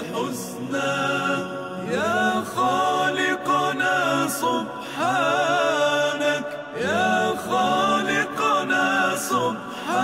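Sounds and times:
sustained held voices: 0.0s - 10.0s.

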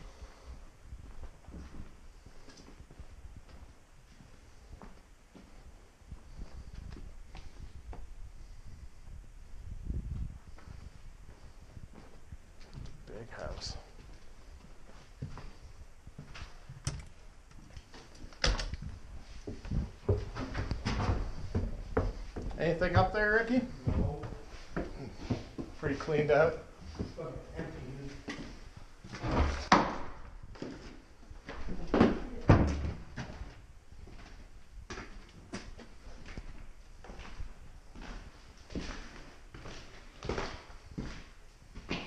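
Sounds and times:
person speaking: 22.5s - 24.5s.

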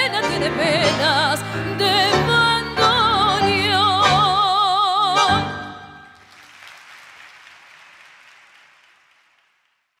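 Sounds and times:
audience applauding: 6.1s - 10.0s.

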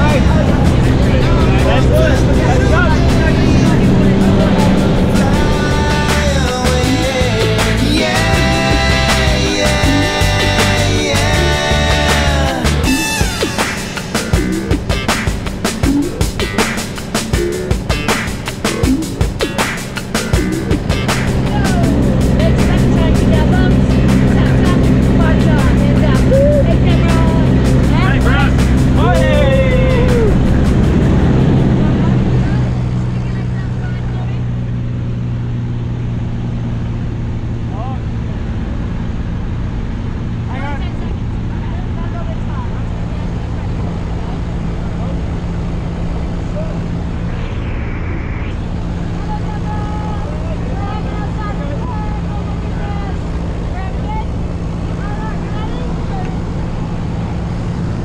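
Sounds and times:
faint voices: 0.0s - 13.0s
aircraft engine and propeller drone: 0.0s - 58.0s.

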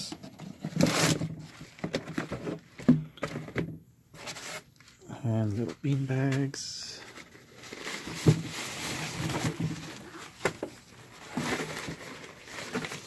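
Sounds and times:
plastic bags rustling: 4.2s - 13.0s.

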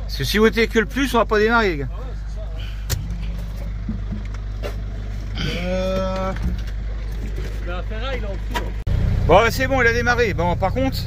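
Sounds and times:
engine rumbling: 0.0s - 11.0s
van engine idling: 0.0s - 11.0s.

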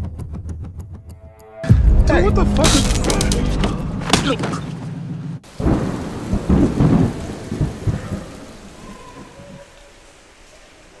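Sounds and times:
thunder rumble: 1.7s - 9.4s
rain hiss: 5.4s - 11.0s.

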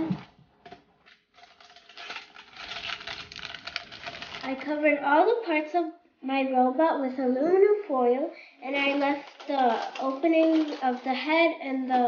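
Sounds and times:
aluminum foil crinkling: 1.1s - 4.8s, 8.6s - 12.0s.

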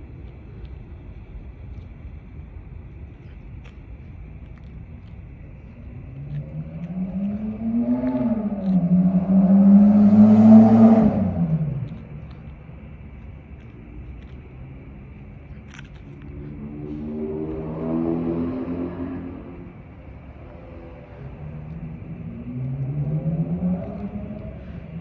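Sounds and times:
faint vehicle approaching: 0.0s - 25.0s
vehicle engine passing by: 6.1s - 12.4s, 15.5s - 25.0s.

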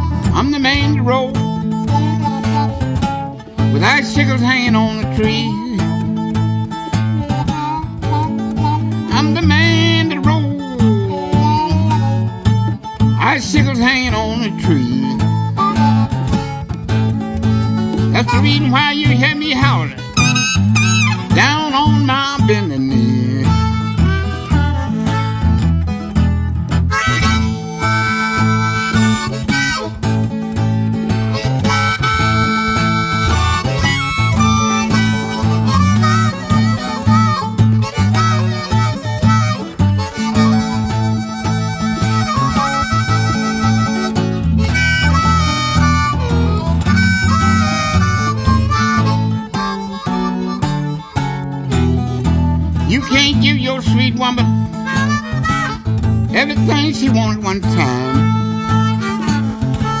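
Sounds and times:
acoustic guitar rhythm: 0.0s - 60.0s
bass line: 0.0s - 60.0s
blues harmonica solo: 0.0s - 60.0s.

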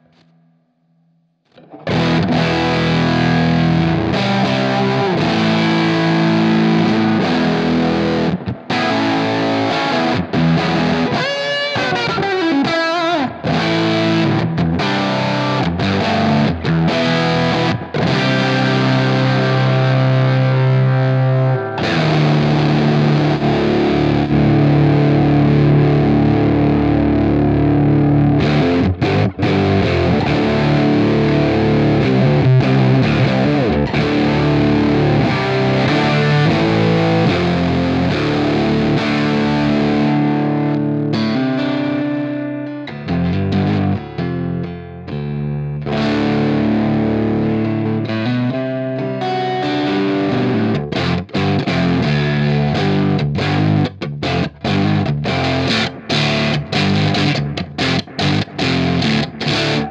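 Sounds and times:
distorted electric guitar: 0.0s - 0.8s, 1.4s - 59.9s.

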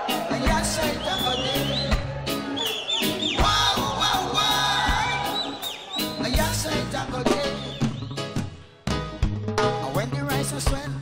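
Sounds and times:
live reggae band: 0.0s - 11.0s.

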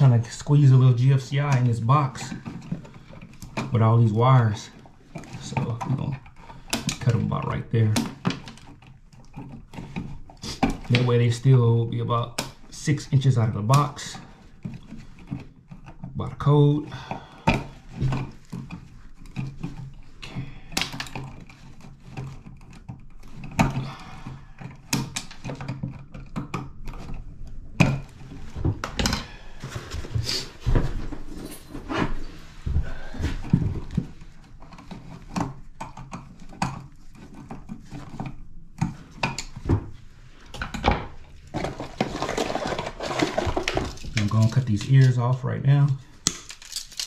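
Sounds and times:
rustling handling noise: 0.0s - 47.0s
tools clattering: 24.6s - 39.8s, 40.6s - 47.0s.

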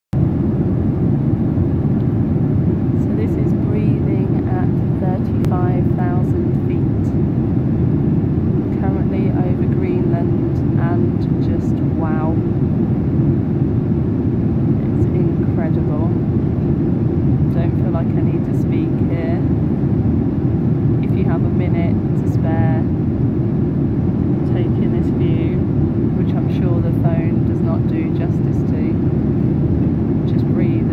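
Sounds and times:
airplane cabin engine rush: 0.2s - 30.9s.

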